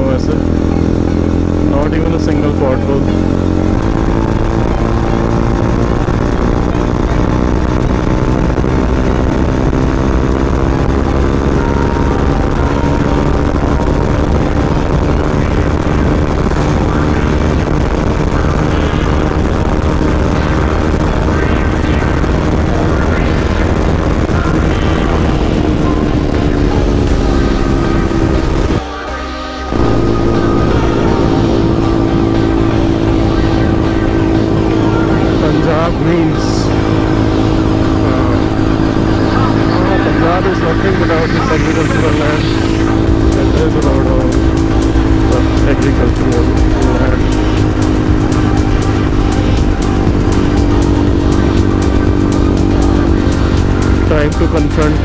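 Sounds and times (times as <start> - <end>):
motorcycle engine running: 0.0 - 55.0
wind rush on microphone: 2.4 - 28.8, 29.7 - 54.8.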